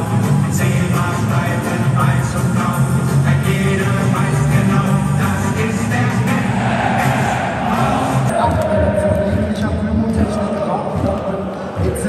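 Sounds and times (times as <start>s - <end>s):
loud music over loudspeakers: 0.0s - 12.0s
stadium crowd: 0.0s - 12.0s.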